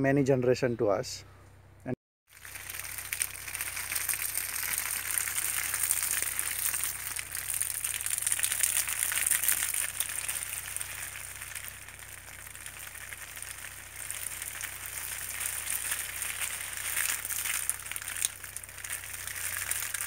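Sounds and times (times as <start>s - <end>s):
hose spraying onto leaves: 2.3s - 20.0s.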